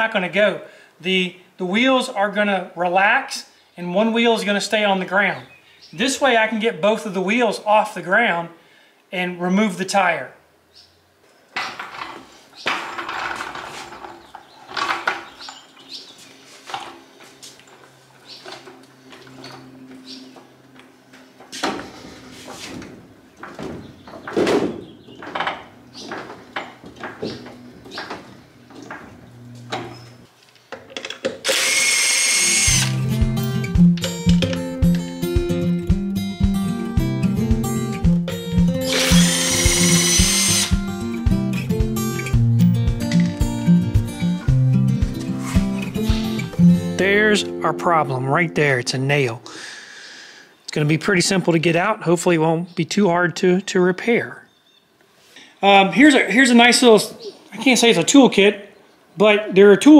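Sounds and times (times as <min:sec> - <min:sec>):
workshop clanks and knocks: 0:11.6 - 0:15.6, 0:21.5 - 0:30.0
impact wrench running: 0:31.4 - 0:33.0, 0:38.9 - 0:40.9
acoustic guitar music with beat: 0:32.9 - 0:38.9, 0:40.7 - 0:48.2.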